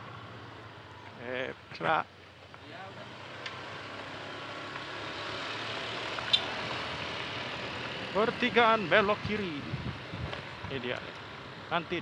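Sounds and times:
wind and tyre noise: 0:02.2 - 0:12.0.

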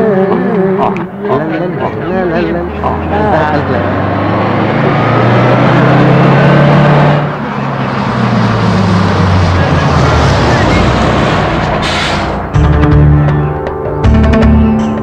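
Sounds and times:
bus engine droning: 0:00.0 - 0:14.8.

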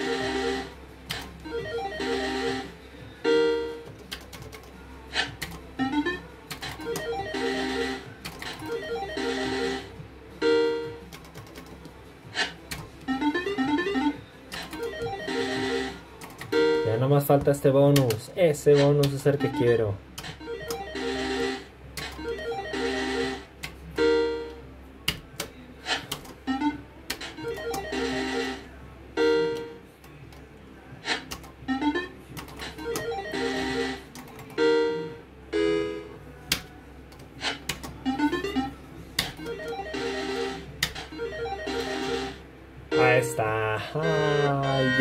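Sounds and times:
win melody with gliding tones: 0:19.4 - 0:24.7, 0:31.6 - 0:36.6, 0:37.9 - 0:45.0
short beeping tones: 0:42.9 - 0:43.4, 0:44.3 - 0:45.0.

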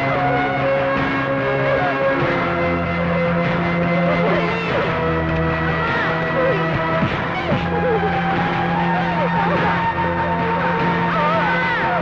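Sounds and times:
dramatic film score: 0:00.0 - 0:12.0
woman's distressed cries: 0:07.4 - 0:12.0.

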